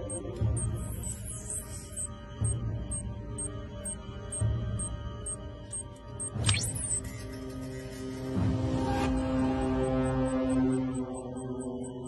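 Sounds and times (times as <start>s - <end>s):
rapid high ticks: 9.1s - 12.0s.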